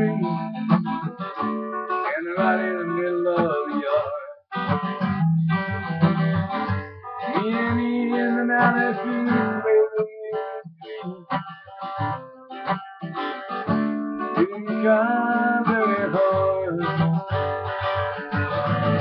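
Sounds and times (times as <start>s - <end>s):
acoustic guitar strumming: 0.0s - 19.0s.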